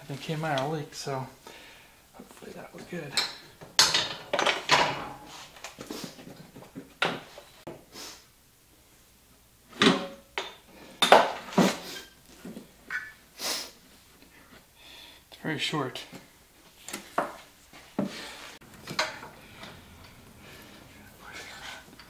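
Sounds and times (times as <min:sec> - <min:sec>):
hand tools and metal parts clinking: 0:02.7 - 0:05.3, 0:18.7 - 0:22.0.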